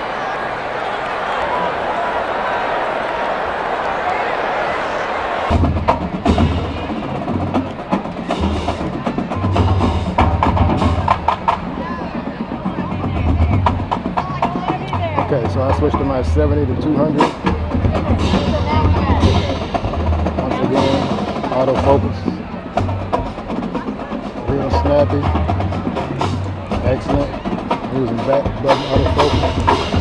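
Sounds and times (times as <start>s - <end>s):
stadium crowd hubbub: 0.0s - 30.0s
percussive music with bass beat: 25.6s - 30.0s.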